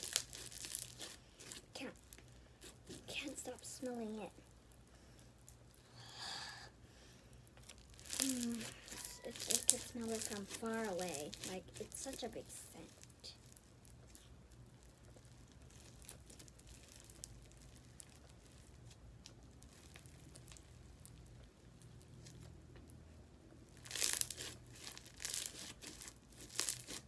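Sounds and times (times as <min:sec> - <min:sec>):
slime crackling: 0:00.0 - 0:05.8, 0:07.5 - 0:22.9, 0:23.7 - 0:27.0.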